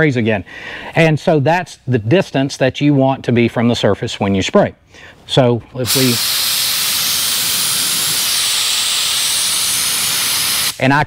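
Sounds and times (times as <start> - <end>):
spray gun blowing air hiss: 5.8 - 10.9.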